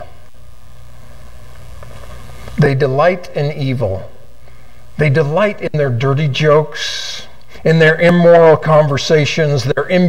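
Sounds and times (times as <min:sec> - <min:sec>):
low hum of room tone: 0:00.0 - 0:10.0.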